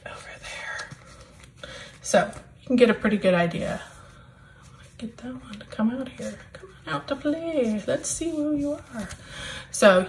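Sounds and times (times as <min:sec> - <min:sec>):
soft whispering: 0:00.0 - 0:01.4.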